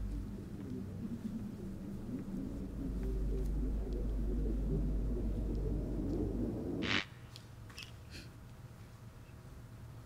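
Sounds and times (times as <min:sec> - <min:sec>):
low rumbling drone: 0:00.0 - 0:07.0.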